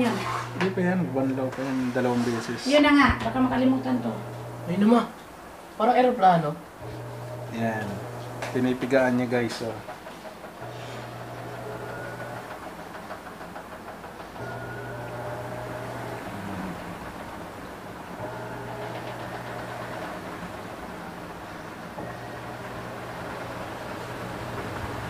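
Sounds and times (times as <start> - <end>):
washing machine motor humming: 0.0 - 25.0.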